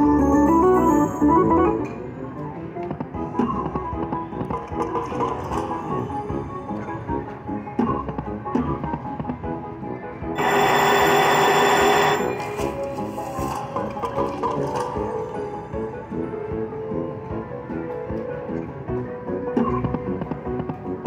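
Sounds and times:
slot machine bonus music: 0:00.0 - 0:02.1, 0:10.4 - 0:13.3
loud bell-like ringing: 0:10.4 - 0:12.6.

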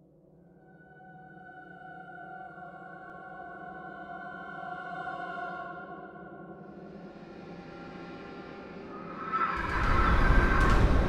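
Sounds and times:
ambient music drone: 0:00.4 - 0:11.0.

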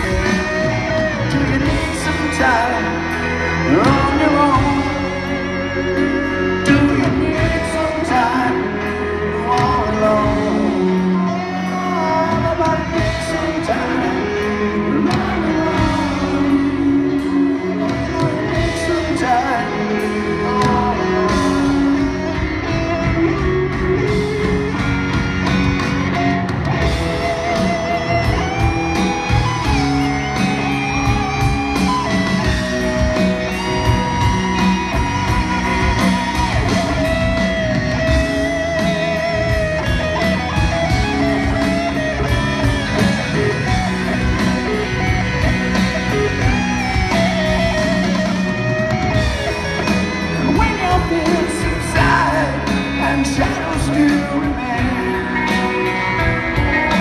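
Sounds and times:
electric guitar solo: 0:00.0 - 0:57.0
live rock band playing ballad: 0:00.0 - 0:57.0.

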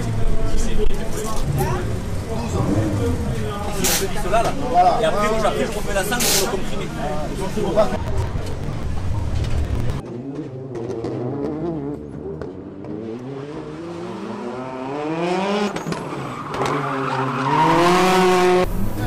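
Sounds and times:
rally car engine revving: 0:00.0 - 0:19.0.

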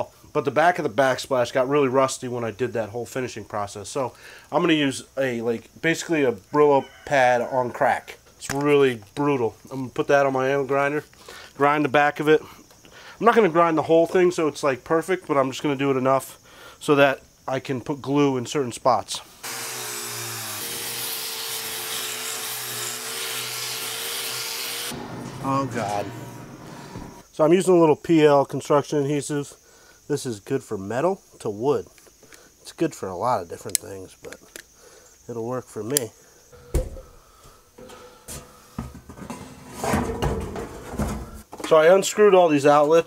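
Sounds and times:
angle grinder scouring rust: 0:19.4 - 0:27.3
sheet metal rattling and scraping: 0:24.9 - 0:27.2, 0:37.8 - 0:41.4.

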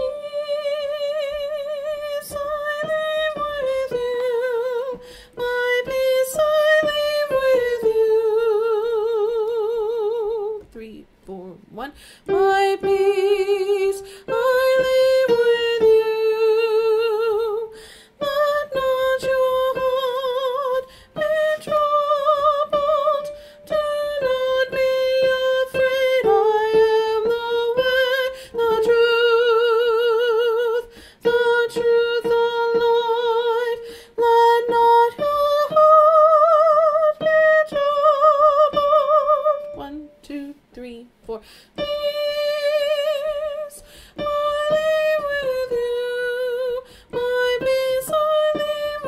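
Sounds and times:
person singing with vibrato: 0:00.0 - 0:49.0.

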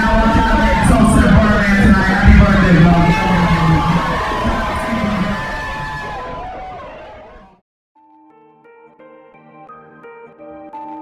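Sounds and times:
crowd cheering: 0:00.0 - 0:07.6.

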